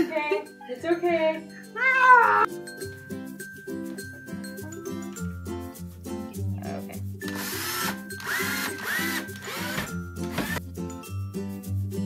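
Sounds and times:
cordless drill driving screws: 7.2s - 10.6s.

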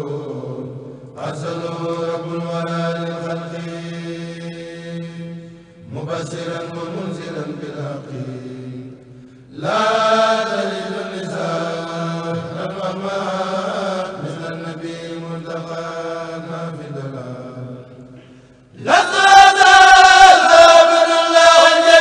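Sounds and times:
men chanting through microphones: 0.0s - 17.8s, 18.8s - 22.0s.

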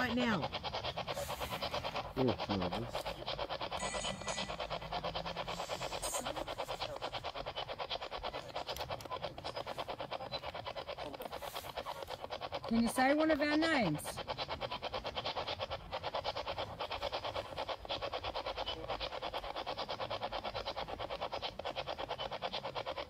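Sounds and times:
radio static chopping rapidly: 0.0s - 23.0s.

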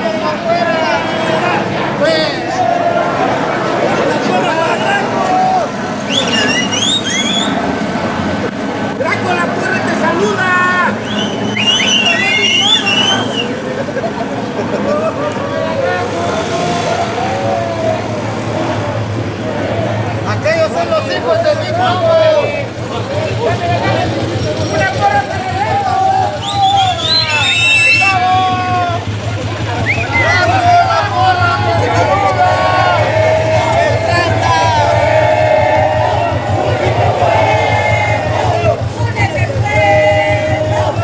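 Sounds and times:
people talking on a street: 0.0s - 41.0s
steady traffic noise: 0.0s - 41.0s
vehicle engine humming: 0.0s - 41.0s
high gliding whistle-like calls: 6.0s - 7.7s, 11.0s - 13.6s, 26.4s - 28.2s.

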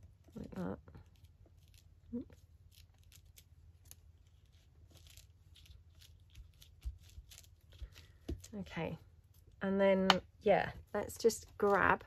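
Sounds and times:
paper and lace rustling: 0.1s - 9.6s, 10.6s - 12.0s.

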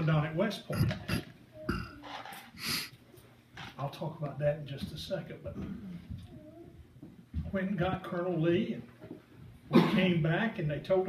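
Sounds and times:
man speaking: 0.0s - 1.2s
man's low throat sound: 0.7s - 2.0s
breath-like hiss: 2.6s - 2.9s.

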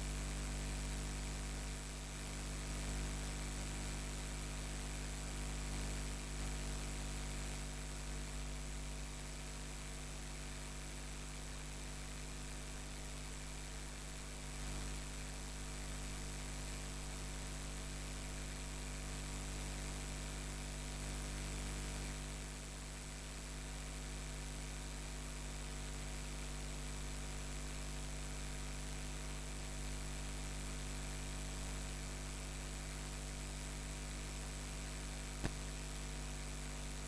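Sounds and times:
electrical mains hum with hiss: 0.0s - 37.0s.

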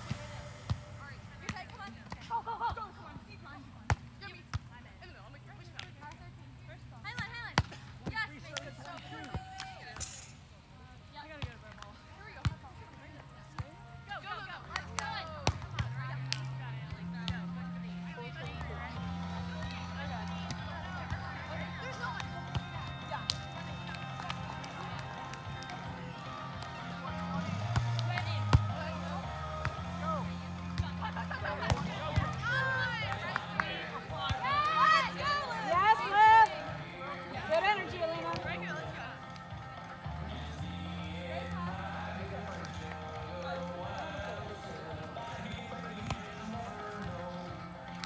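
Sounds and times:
faint music: 0.0s - 48.0s
murmuring voices: 13.4s - 48.0s
hand slapping volleyball: 14.7s - 16.5s, 21.9s - 25.8s, 27.6s - 28.9s, 30.8s - 34.8s.

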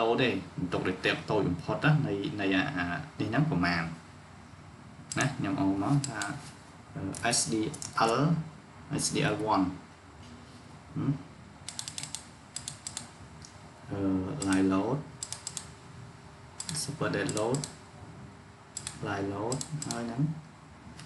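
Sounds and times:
keyboard and mouse clicking: 5.1s - 5.3s, 11.7s - 13.1s, 14.4s - 15.7s, 16.6s - 17.8s, 18.8s - 20.1s.

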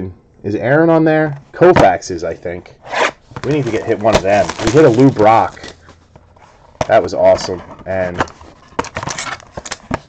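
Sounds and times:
cards and foil wrapper crinkling: 3.4s - 6.0s.

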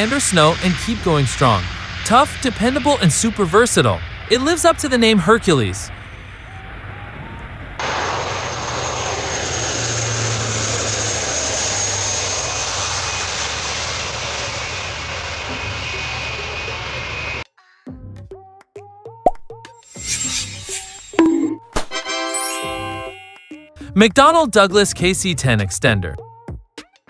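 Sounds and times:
turboprop aircraft taking off: 0.0s - 17.4s.

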